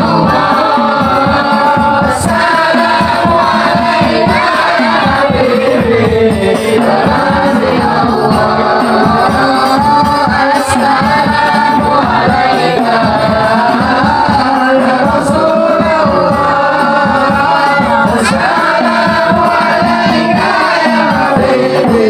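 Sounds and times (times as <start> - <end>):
hand drumming on frame drums: 0.0 - 22.0
men singing in unison: 0.0 - 22.0
person singing into a microphone: 0.0 - 22.0.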